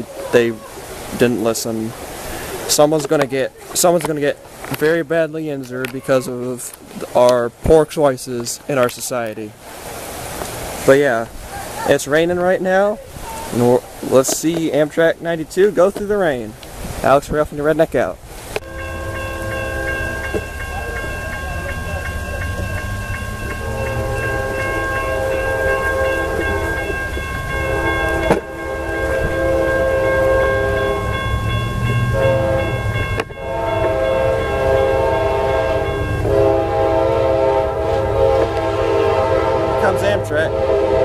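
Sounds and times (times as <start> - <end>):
low train rumble: 17.8 - 41.0
train air horn blasts: 18.6 - 41.0.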